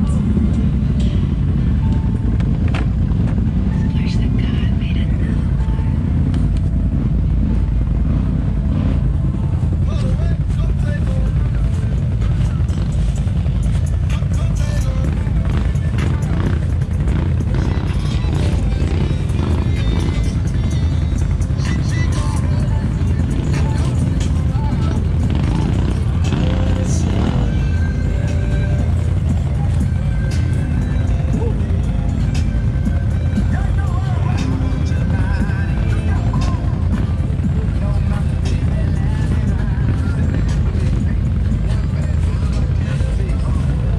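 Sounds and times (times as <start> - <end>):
music playing: 0.0 - 43.9
quad bike engines droning: 0.0 - 43.9.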